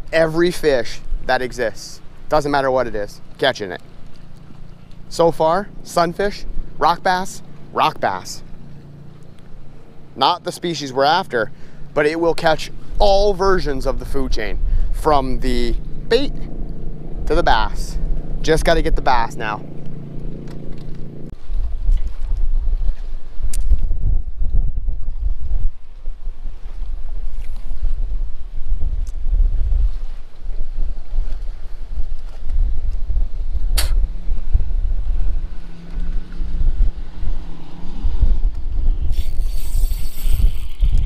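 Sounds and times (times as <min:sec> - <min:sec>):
wind buffeting microphone: 0:11.3 - 0:41.0
sharp click: 0:33.8 - 0:34.0
short hiss: 0:33.8 - 0:34.0.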